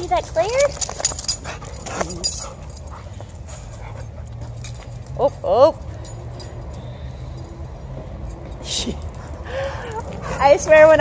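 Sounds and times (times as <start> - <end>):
dogs playing: 0.0 - 11.0.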